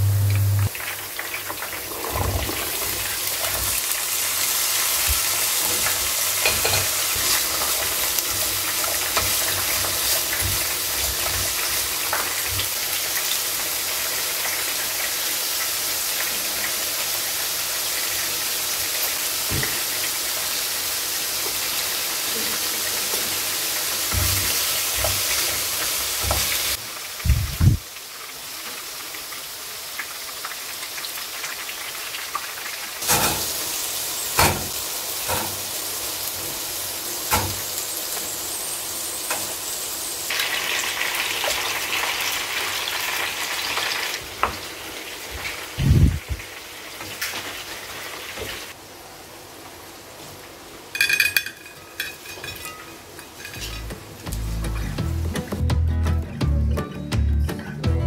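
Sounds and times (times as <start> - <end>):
vegetables sizzling in wok: 0.0 - 55.7
fritters frying in oil: 0.1 - 48.8.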